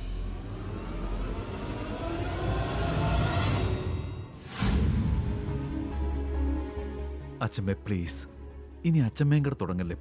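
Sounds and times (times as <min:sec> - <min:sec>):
low rumbling dramatic music: 0:00.0 - 0:10.0.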